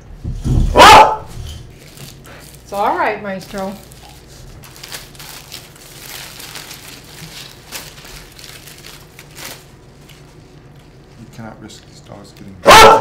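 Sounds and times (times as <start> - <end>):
food wrappers crinkling: 1.7 - 12.6.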